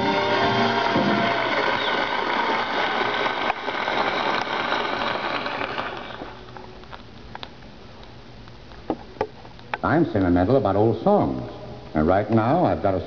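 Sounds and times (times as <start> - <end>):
audience applauding: 0.0 - 6.4
record surface crackle: 0.4 - 10.9.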